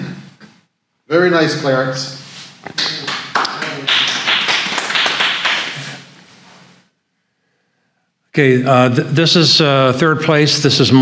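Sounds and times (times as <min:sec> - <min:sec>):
small audience applauding: 0:02.7 - 0:06.2.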